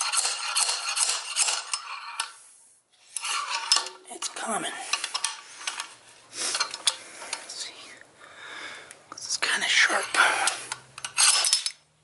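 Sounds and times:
weight scraping along metal shaft: 0.0 - 7.5
metal clanking: 11.0 - 11.8.

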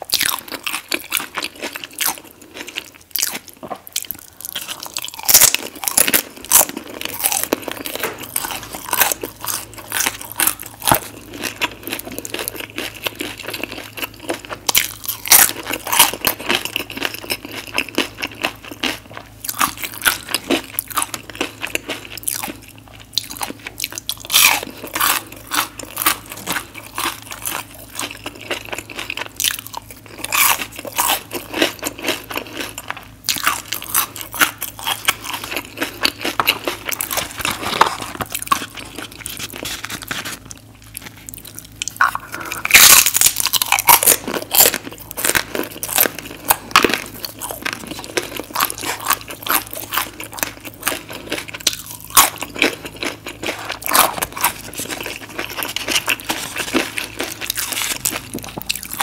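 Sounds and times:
crunching chips: 0.0 - 59.0
low steady hum: 0.0 - 59.0.

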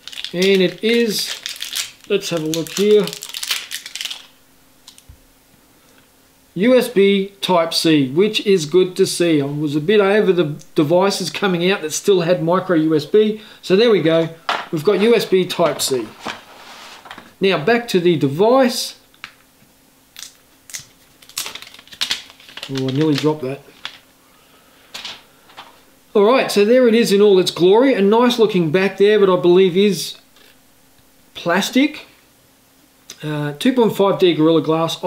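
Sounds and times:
plastic film peeling and crinkling: 0.0 - 5.1, 20.2 - 24.0
cable rustling: 0.0 - 5.2, 14.1 - 17.4, 20.7 - 24.1.

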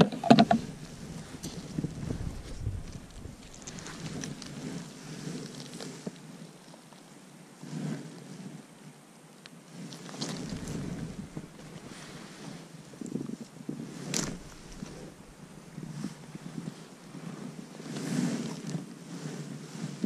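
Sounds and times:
handling noise: 0.0 - 4.9, 10.0 - 12.5, 14.0 - 16.5
wind buffeting microphone: 0.1 - 5.4, 10.1 - 20.0
clothing rustling: 0.6 - 6.0, 10.0 - 18.6.

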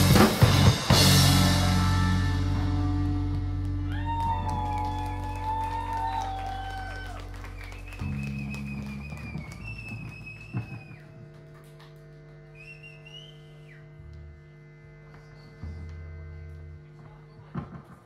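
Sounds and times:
bass guitar notes: 0.0 - 18.0
electric guitar through amplifier: 0.0 - 18.0
whistling guitar feedback: 0.5 - 17.5.

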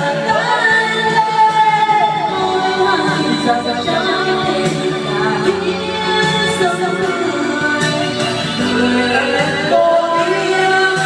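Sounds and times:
backing music: 0.0 - 11.0
person singing: 0.0 - 11.0.

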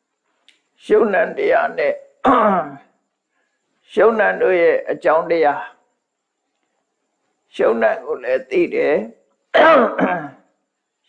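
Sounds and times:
man speaking: 0.8 - 2.1, 3.9 - 5.8, 7.5 - 9.2.

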